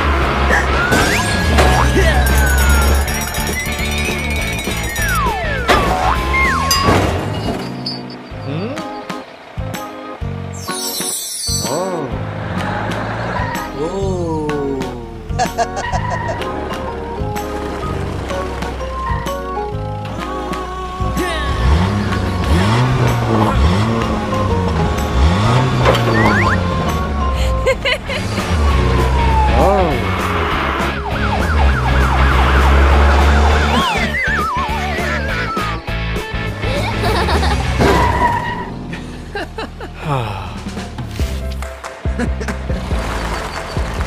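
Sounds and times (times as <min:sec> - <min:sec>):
cartoon vehicle engine: 0:00.0 - 0:41.1
background music: 0:00.0 - 0:44.0
character's pitched voice: 0:13.7 - 0:16.4.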